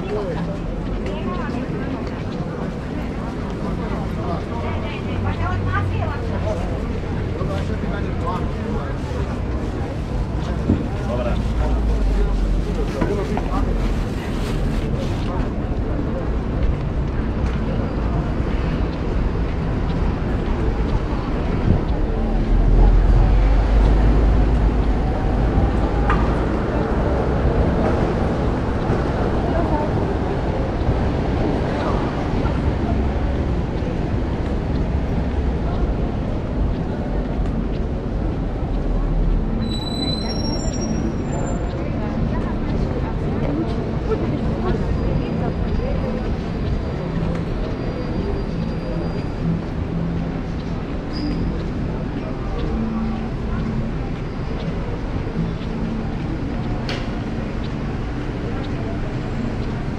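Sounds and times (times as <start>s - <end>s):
chatter of passers-by: 0.0s - 59.9s.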